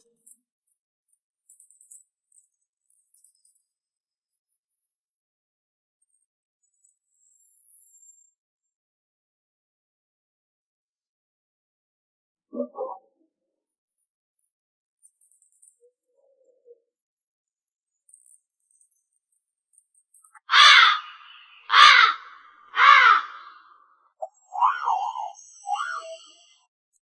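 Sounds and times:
crow cawing: 20.5 - 23.8.

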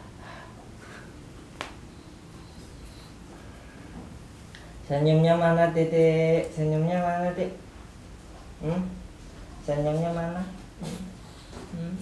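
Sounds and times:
soft breaths: 0.0 - 4.8.

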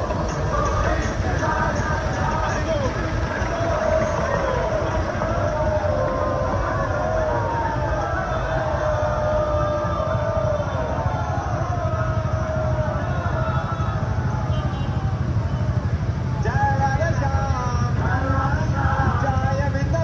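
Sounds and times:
traffic engine and road rumble: 0.0 - 20.0.

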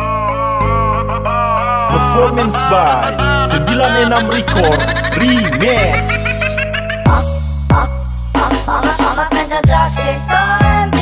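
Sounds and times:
electronic remix music: 0.0 - 11.0.

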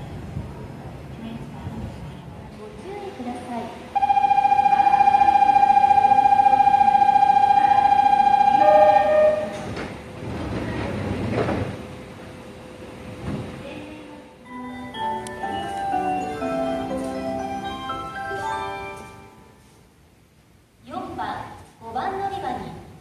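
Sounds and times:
subway train pulling out: 0.0 - 20.9
electronic departure bell ringing: 4.0 - 9.7, 14.5 - 19.6.

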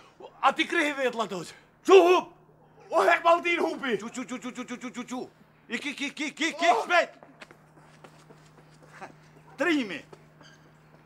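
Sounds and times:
loud vocal cry: 6.5 - 7.1.

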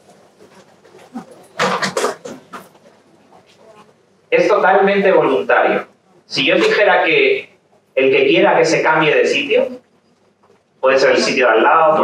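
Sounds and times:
seat knocks and creaks: 0.9 - 2.9.

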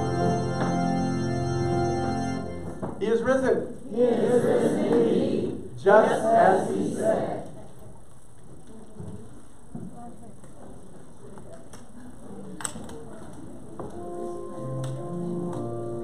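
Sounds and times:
keyboard playing sustained chords: 0.0 - 2.8, 14.0 - 16.0.

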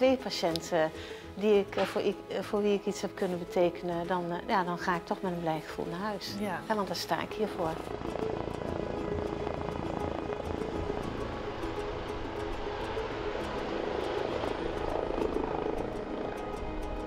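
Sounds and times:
helicopter rotor and turbines: 4.7 - 17.0.

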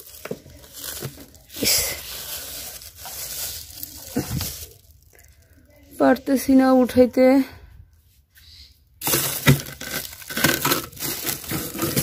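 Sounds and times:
frozen packages knocking: 0.0 - 4.8, 9.0 - 12.0
plastic bags crinkling: 0.0 - 5.9, 9.0 - 12.0.

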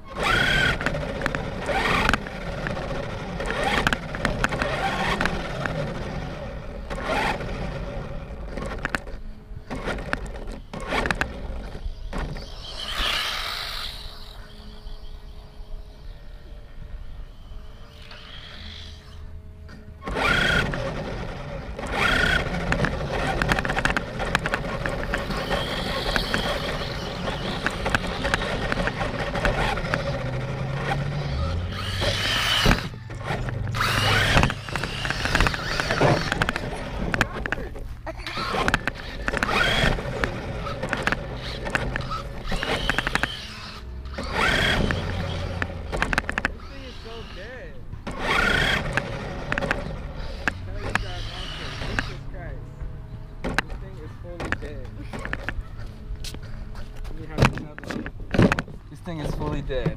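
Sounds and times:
rc car motor and rattling: 0.0 - 52.6, 53.4 - 59.9.

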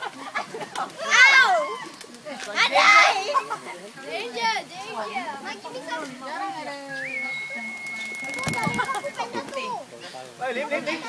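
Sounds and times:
children's voices at play: 0.0 - 11.0.

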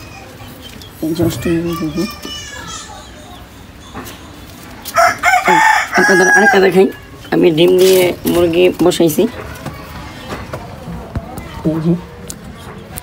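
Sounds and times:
rooster crowing: 5.0 - 6.8.

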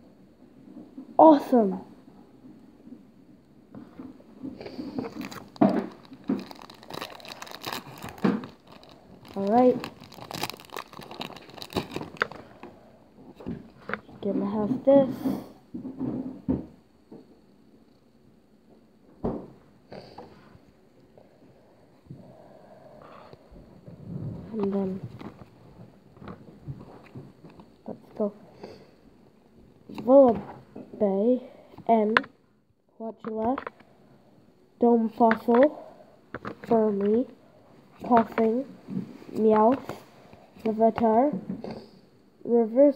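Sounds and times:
trading cards rustling and clicking: 4.6 - 12.6
foil wrapper crinkling and tearing: 5.0 - 12.7.

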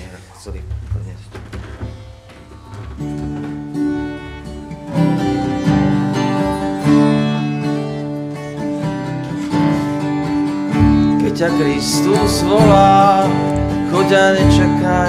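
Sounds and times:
acoustic guitar playing: 0.0 - 15.0.

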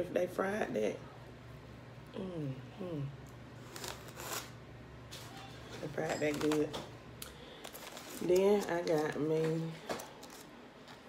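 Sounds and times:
crispy breading rustling: 7.5 - 10.6.

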